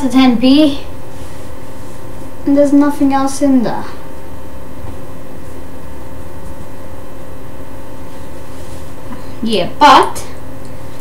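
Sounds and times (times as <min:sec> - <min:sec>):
faint constant hum: 0:00.0 - 0:11.0
room hiss: 0:00.0 - 0:11.0.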